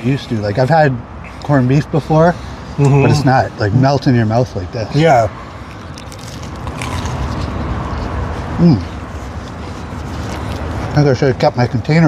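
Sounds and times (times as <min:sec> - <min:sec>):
people chewing sandwiches: 0:00.0 - 0:12.0
toasted bread crunching: 0:05.7 - 0:07.6.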